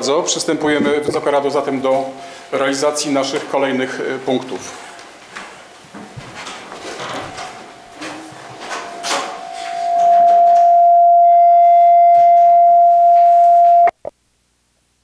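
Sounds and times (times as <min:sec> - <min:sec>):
microphone feedback howl: 0:08.9 - 0:14.1.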